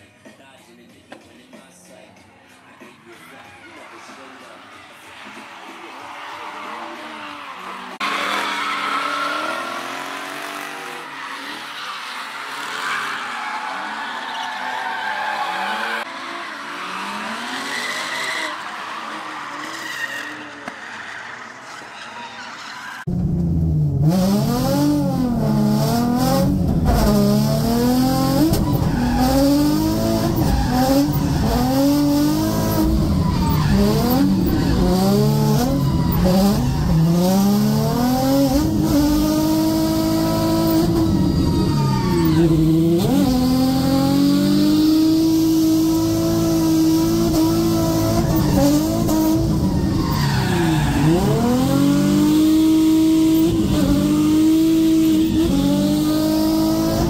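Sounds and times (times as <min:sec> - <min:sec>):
tyres skidding: 0:02.5 - 0:57.0
car engine revving: 0:05.0 - 0:11.6, 0:23.0 - 0:57.0.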